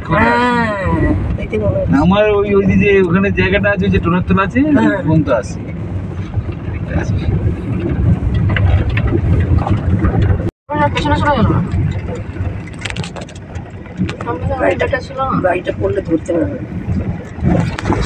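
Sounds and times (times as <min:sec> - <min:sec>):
vehicle engine and road rumble: 0:00.0 - 0:18.0.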